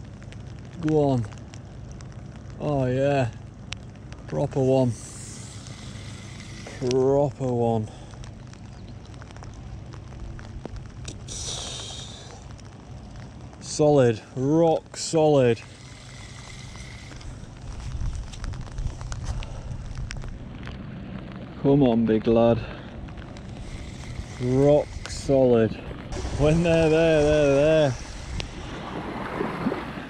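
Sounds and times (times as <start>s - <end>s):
light ticks: 0.0s - 2.6s, 3.2s - 21.5s, 22.8s - 25.8s, 26.9s - 28.7s
rain hissing: 0.0s - 30.0s
man talking: 0.8s - 1.4s, 2.6s - 3.4s, 4.3s - 5.2s, 6.8s - 8.0s, 13.6s - 15.7s, 21.6s - 22.8s, 24.4s - 28.1s
wind buffeting microphone: 16.5s - 30.0s.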